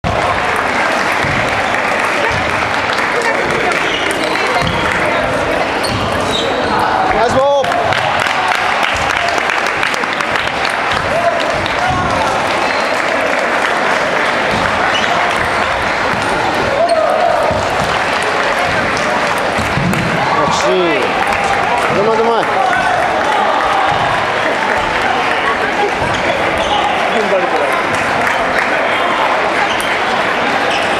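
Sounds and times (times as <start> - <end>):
chatter of voices: 0.0 - 30.9
loud shout: 11.0 - 13.4, 16.6 - 17.6.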